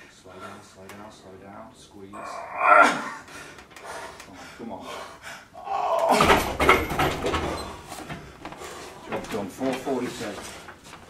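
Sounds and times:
man groaning and gasping: 2.2s - 3.3s, 5.6s - 6.5s.

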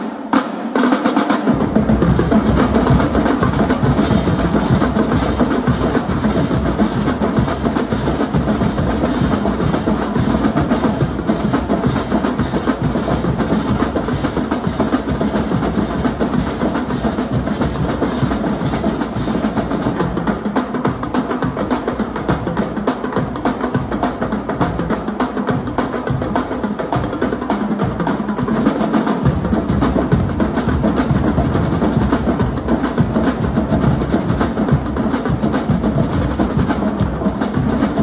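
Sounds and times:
snare drums: 0.0s - 38.0s
tenor drums: 0.0s - 38.0s
bass drums: 1.5s - 38.0s.

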